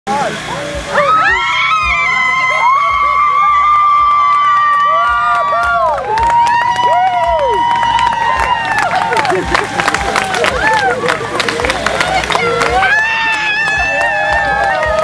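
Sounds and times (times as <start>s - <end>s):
crowd voices and cheering: 0.1s - 15.0s.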